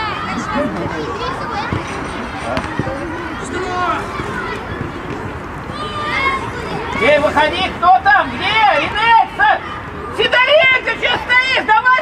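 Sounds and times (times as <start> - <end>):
open-air background noise: 0.0 - 12.0
players and coaches shouting: 0.0 - 12.0.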